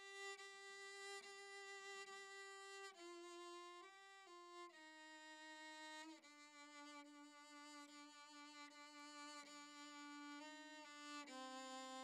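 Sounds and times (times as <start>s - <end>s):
solo violin slow melody: 0.0s - 12.0s.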